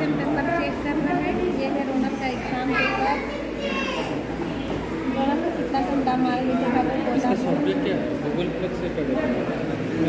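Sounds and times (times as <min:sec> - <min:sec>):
chatter of children and adults: 0:00.0 - 0:10.0
child's high voice: 0:02.7 - 0:04.2.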